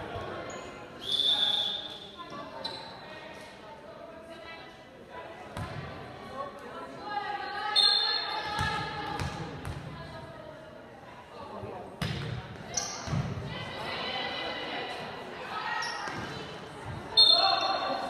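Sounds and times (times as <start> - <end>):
echoing crowd and player voices: 0.0 - 18.0.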